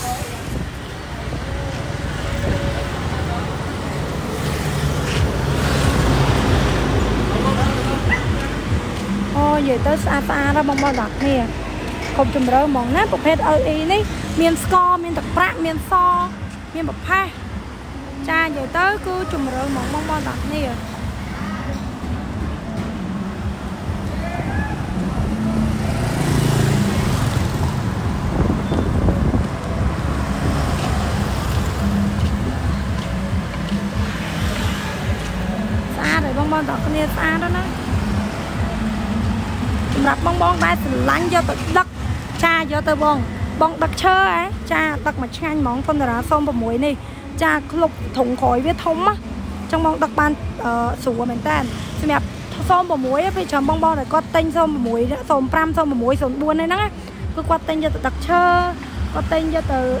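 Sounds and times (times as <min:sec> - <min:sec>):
traffic rumble: 0:00.0 - 1:00.0.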